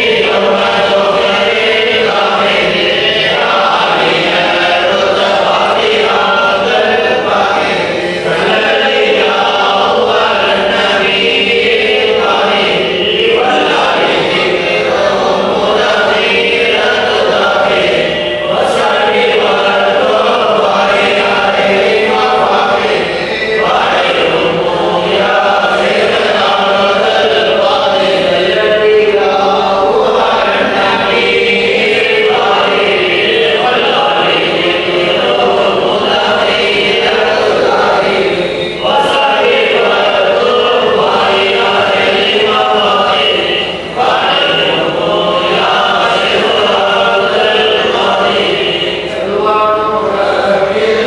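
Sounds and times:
men chanting together: 0.0 - 51.0.

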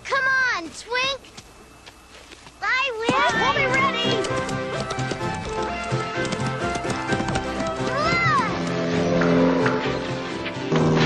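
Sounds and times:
clip-clop hoofbeat effects: 3.1 - 10.0
orchestral music: 3.2 - 11.0.

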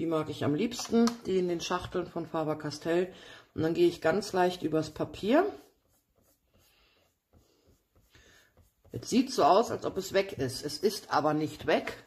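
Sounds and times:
eraser rubbing on paper: 3.8 - 10.2.

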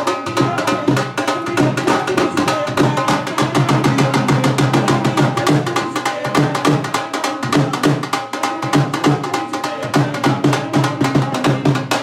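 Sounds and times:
dhol drum fast beat: 0.0 - 12.0.

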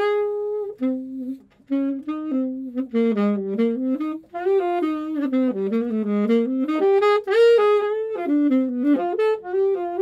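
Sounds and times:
alto saxophone playing jazz: 0.0 - 10.0.

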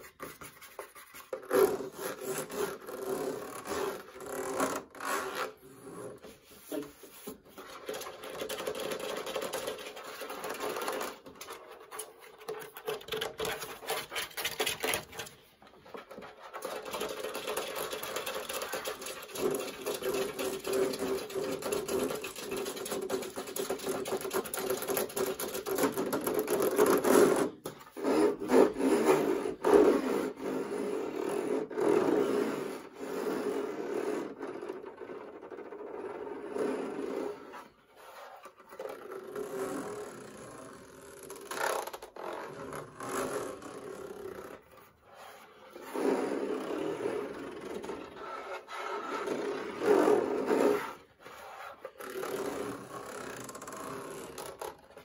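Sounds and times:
fingernails scratching on plastic: 0.0 - 55.0.

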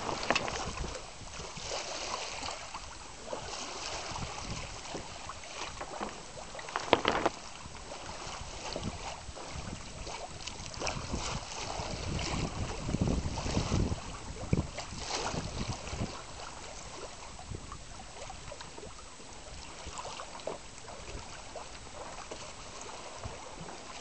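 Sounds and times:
wind buffeting microphone: 0.0 - 19.6
water lapping against boat hull: 0.0 - 24.0.

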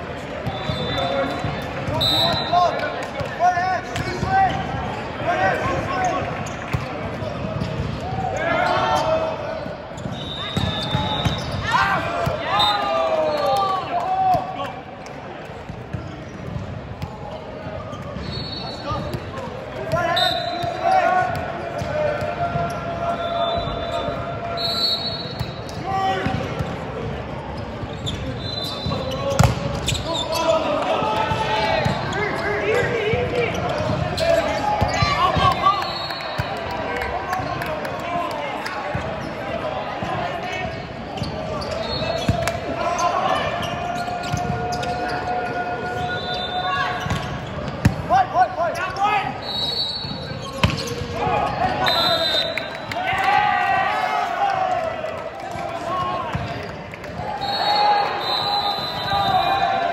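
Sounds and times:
volleyball impacts in echoing gym: 0.0 - 59.9
players shouting: 7.6 - 14.8, 28.3 - 59.9.

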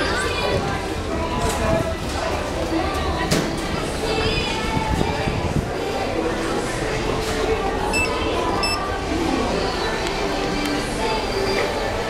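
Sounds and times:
people chattering: 0.0 - 12.0
elevator call button beeps: 7.9 - 8.9.

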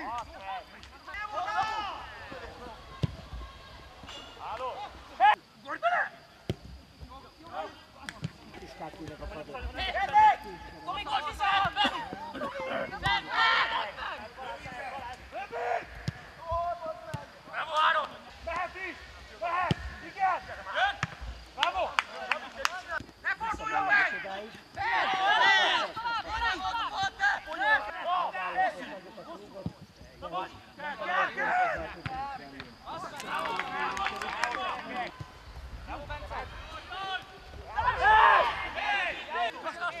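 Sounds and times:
players shouting: 0.0 - 6.2, 9.6 - 29.0, 30.3 - 32.2, 32.9 - 40.0.

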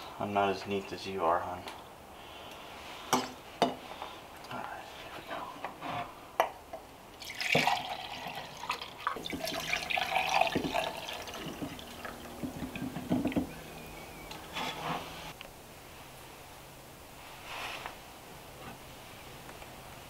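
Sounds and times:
thick liquid pouring into mugs: 7.2 - 13.5
cinnamon sticks clinking in mugs: 7.3 - 13.6.

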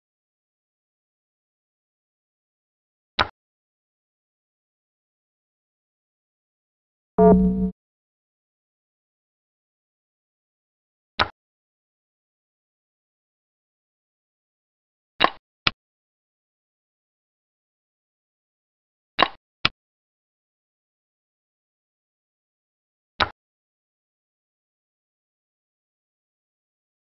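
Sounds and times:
electronic game move tone: 7.2 - 7.7.

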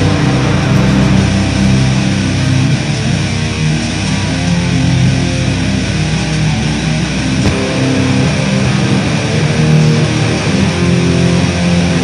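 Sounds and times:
bass guitar: 0.0 - 12.0
distorted electric guitars: 0.0 - 12.0.

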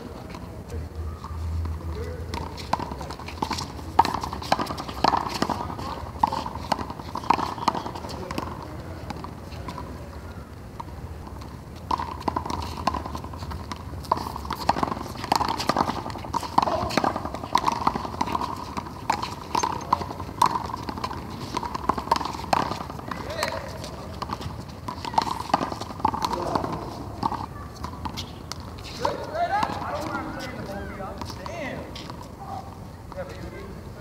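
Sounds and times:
quick footsteps on court: 0.0 - 33.5.

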